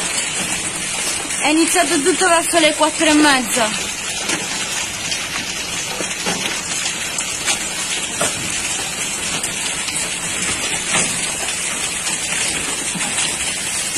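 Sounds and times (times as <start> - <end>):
heavy rain pouring: 0.0 - 13.9
sharp rain hits: 0.0 - 13.9.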